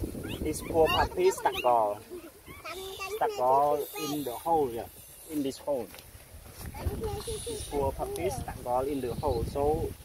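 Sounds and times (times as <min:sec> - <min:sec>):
puppy whining cries: 0:00.2 - 0:04.4.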